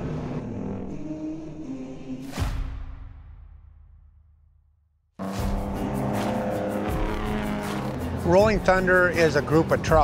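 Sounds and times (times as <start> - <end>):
music: 0.0 - 4.5, 5.2 - 10.0
truck diesel engines racing: 5.2 - 10.0.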